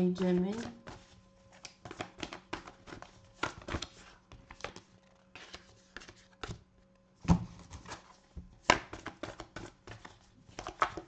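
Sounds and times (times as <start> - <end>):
cards tapping on a table: 8.7 - 10.0.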